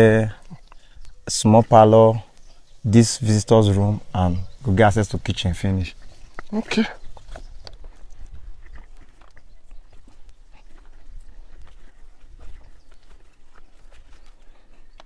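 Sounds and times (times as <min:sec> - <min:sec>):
footsteps on soil and rubble: 0:05.9 - 0:15.0.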